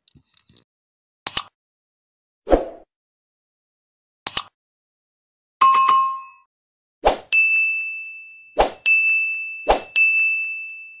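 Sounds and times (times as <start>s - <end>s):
short swish: 2.5s - 2.8s, 9.7s - 9.9s.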